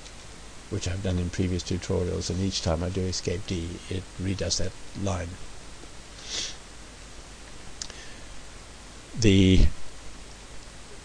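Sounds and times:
low electrical hum: 0:00.0 - 0:11.0
man breathing in sharply: 0:06.2 - 0:06.6.

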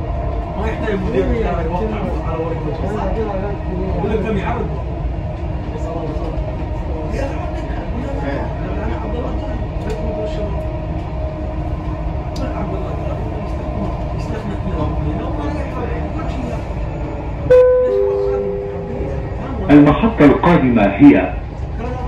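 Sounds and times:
train wheels and motors rumbling: 0:00.0 - 0:22.0
station announcement: 0:17.4 - 0:21.6
two-note chime: 0:17.5 - 0:19.2
faint whine: 0:17.5 - 0:21.4.

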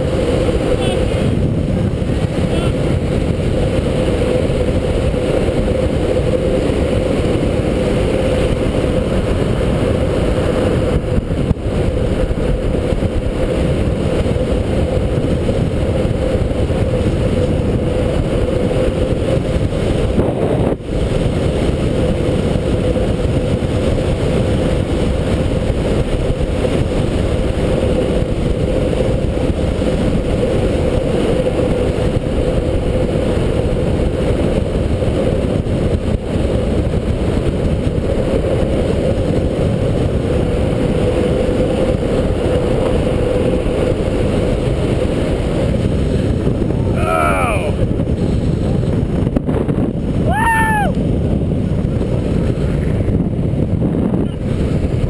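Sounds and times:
longboard wheels rolling on asphalt: 0:00.0 - 0:55.0
wind buffeting microphone: 0:00.0 - 0:55.0.

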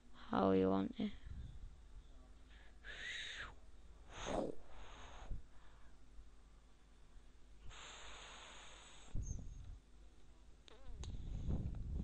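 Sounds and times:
person exhaling: 0:02.5 - 0:05.9, 0:07.7 - 0:09.3.

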